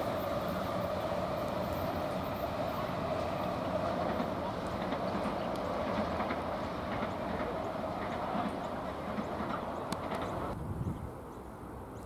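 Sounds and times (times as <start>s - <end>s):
electric train running on track: 0.0s - 12.0s.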